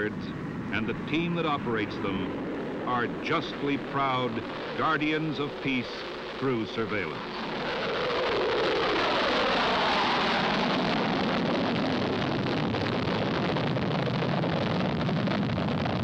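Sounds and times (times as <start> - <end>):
jet engines roaring: 0.0 - 16.0.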